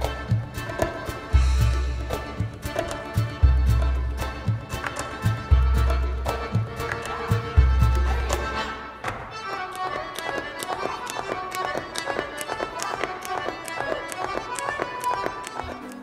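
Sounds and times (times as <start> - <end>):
clarinet and accordion melody: 0.0 - 16.0
percussion ticking beat: 0.0 - 16.0.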